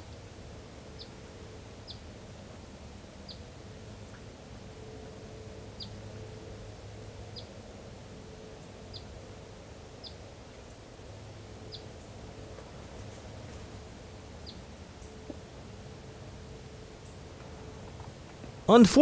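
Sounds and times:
faint woodland background hum: 0.0s - 19.0s.

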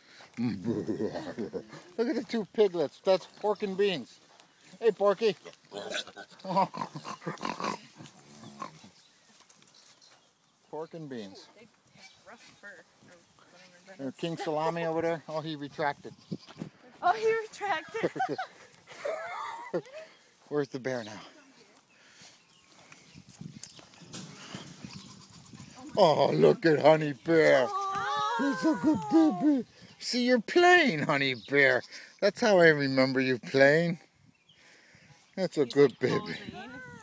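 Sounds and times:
pig grunting: 5.4s - 8.9s.

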